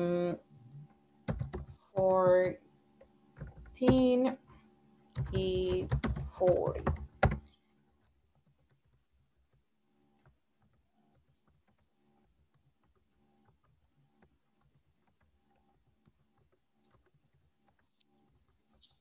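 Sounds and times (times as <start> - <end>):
keyboard keystrokes: 3.4 - 4.2, 5.2 - 7.5.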